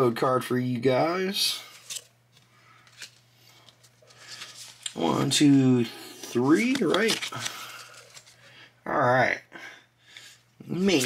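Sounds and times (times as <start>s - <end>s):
trading cards clicking: 6.4s - 8.3s.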